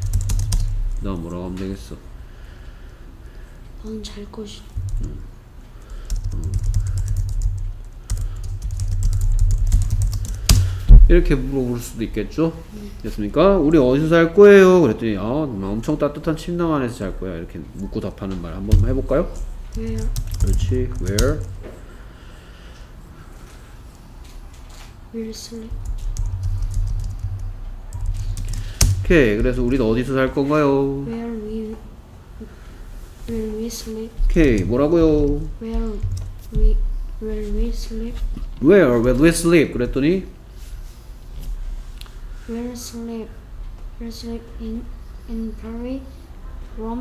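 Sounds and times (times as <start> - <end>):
typing on computer keyboard: 0.0 - 0.8, 6.0 - 10.8, 19.3 - 21.6, 25.7 - 29.5
low steady hum: 0.0 - 47.0.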